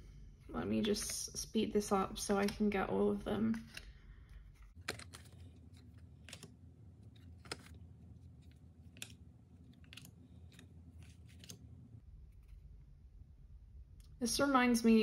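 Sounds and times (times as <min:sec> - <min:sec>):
low room hum: 0:00.0 - 0:15.0
cards tapping and slapping: 0:04.7 - 0:11.6.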